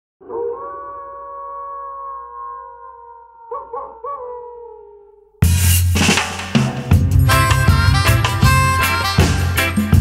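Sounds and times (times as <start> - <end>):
dog howling: 0.2 - 5.3
dog yelping: 1.4 - 5.0.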